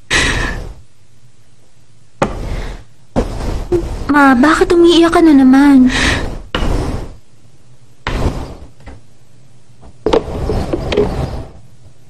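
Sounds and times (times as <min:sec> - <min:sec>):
sudden thump: 0:02.2 - 0:04.1, 0:08.0 - 0:09.0.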